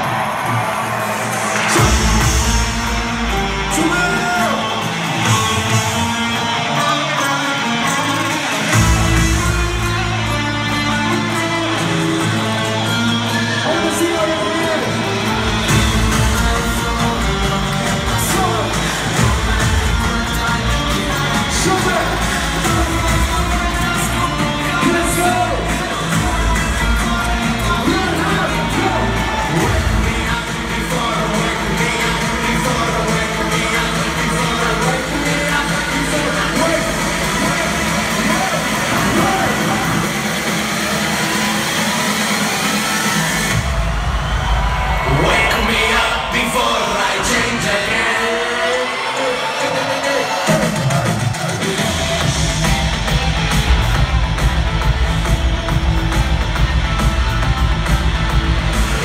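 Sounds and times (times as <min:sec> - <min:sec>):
loud electronic rock music with vocals: 0:00.0 - 0:59.0.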